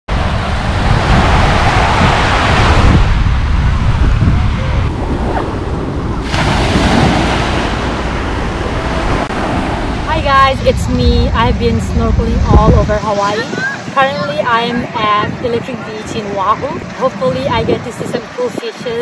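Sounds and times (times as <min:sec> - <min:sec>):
small waves washing onto beach: 0:00.1 - 0:10.1
wind buffeting microphone: 0:00.1 - 0:19.0.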